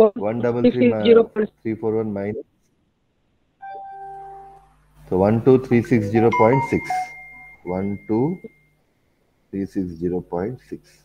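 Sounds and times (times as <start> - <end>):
electronic two-note chime: 3.6 - 4.7, 5.4 - 8.7.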